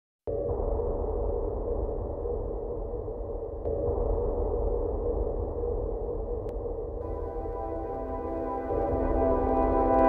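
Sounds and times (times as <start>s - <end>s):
deep rumble: 0.3s - 10.0s
muffled synth drone: 7.0s - 10.0s.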